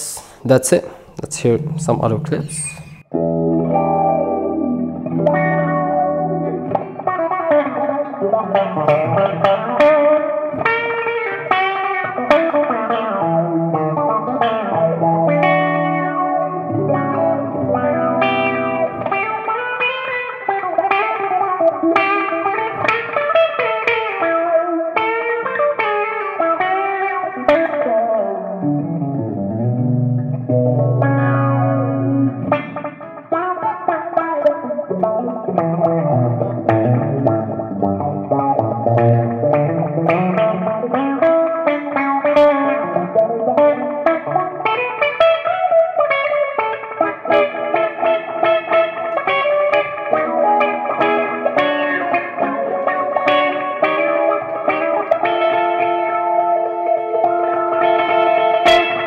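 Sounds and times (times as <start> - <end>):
funky filtered electric guitar: 0.0 - 59.0.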